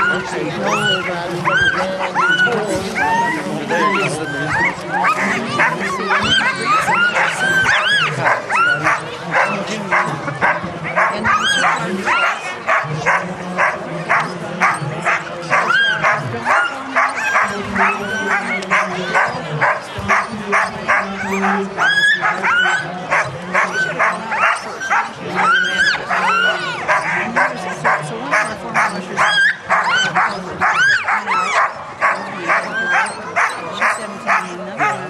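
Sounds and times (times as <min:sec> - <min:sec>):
murmur of voices: 0:00.0 - 0:35.0
sled dogs yelping and barking: 0:00.0 - 0:35.0.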